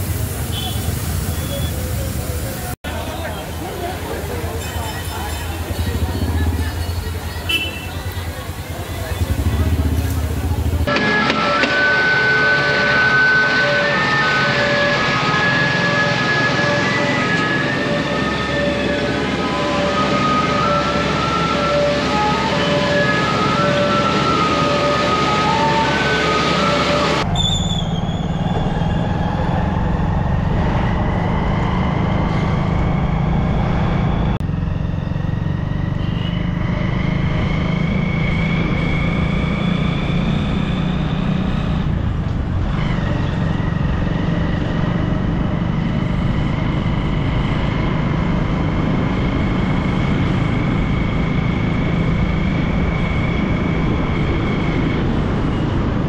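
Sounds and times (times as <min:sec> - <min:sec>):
vehicle engine and road noise: 0:00.0 - 0:56.0.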